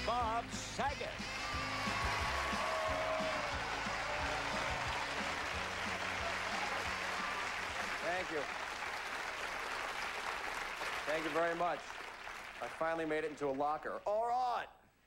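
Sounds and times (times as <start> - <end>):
studio audience applauding: 0.6 - 14.4.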